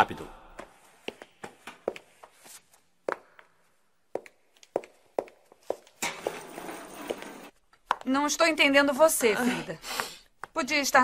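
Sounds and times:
footsteps on hard floor: 0:00.6 - 0:08.1.

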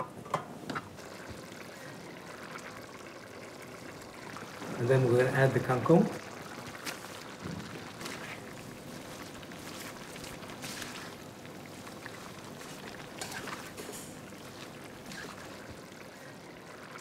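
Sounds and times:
sauce bubbling in a wok: 0:00.8 - 0:17.0
spatula scraping and rustling leaves: 0:08.0 - 0:11.2, 0:12.2 - 0:15.7.

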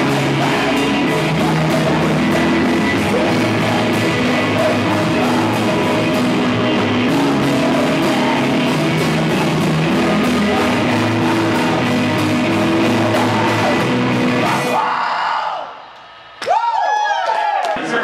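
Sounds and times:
rock band playing live: 0:00.0 - 0:14.9
man singing: 0:00.0 - 0:15.0.

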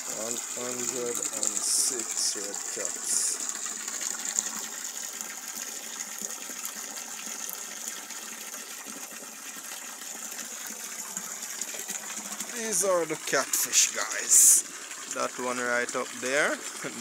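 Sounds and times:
water gushing into pond: 0:00.0 - 0:17.0.

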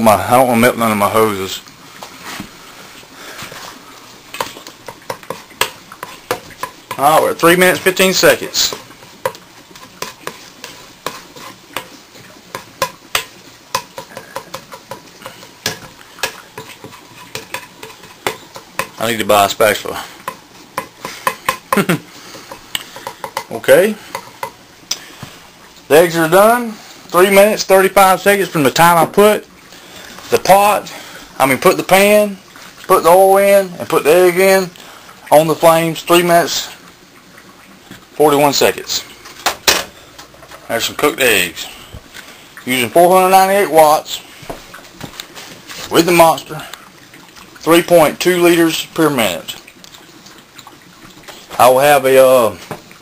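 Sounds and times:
steady hiss: 0:00.0 - 0:53.0
utensil scraping frying pan: 0:02.1 - 0:26.3.

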